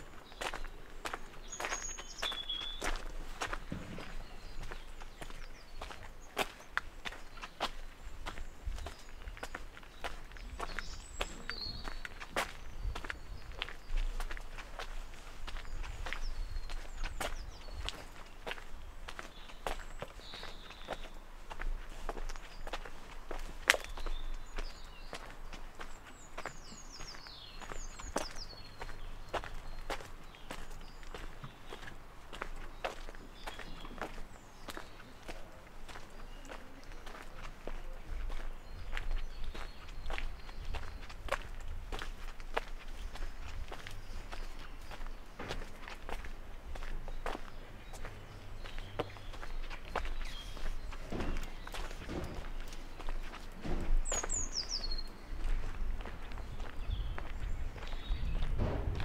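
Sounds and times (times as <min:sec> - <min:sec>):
footsteps on gravel: 0:00.0 - 0:59.0.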